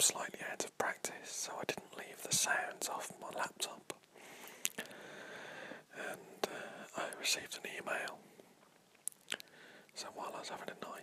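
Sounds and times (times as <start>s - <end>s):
man whispering: 0.0s - 4.1s, 5.9s - 8.3s, 9.3s - 11.0s
soft breath: 4.1s - 7.2s, 9.4s - 11.0s.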